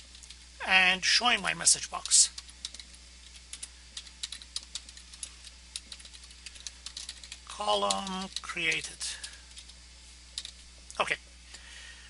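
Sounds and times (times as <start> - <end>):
steady low hum: 0.0 - 12.0
computer keyboard keys clicking: 2.0 - 9.8, 10.4 - 10.6.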